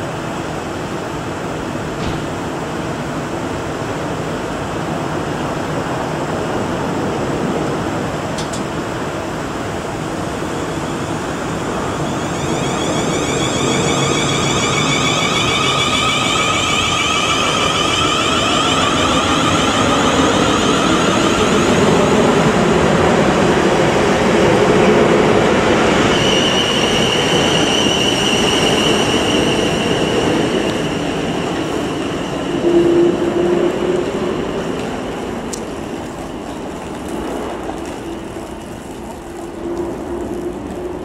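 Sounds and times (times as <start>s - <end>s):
train wheels rumbling on rail: 0.0s - 41.0s
high traction motor whine: 10.0s - 23.4s.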